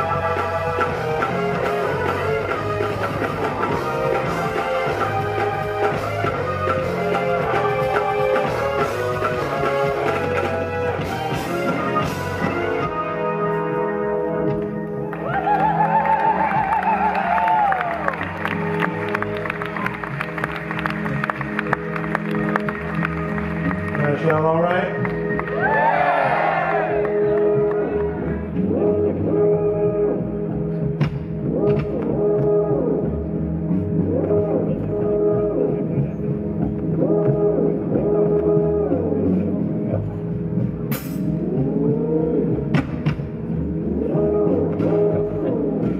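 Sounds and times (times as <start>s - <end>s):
funk band playing: 0.0s - 15.1s, 27.0s - 45.9s
bass guitar: 0.0s - 45.9s
keyboard chords: 0.0s - 45.9s.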